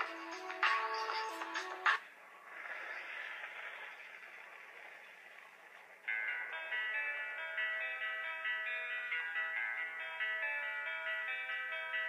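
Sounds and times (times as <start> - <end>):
loud music: 0.0 - 2.0.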